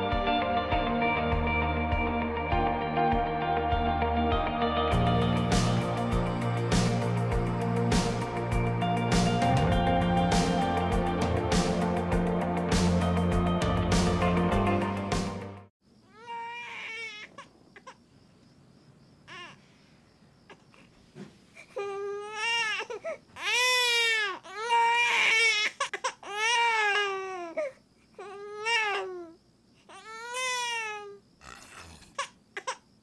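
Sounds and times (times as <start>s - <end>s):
music: 0.0s - 15.7s
baby crying: 16.1s - 18.0s, 19.3s - 19.6s, 21.6s - 32.9s.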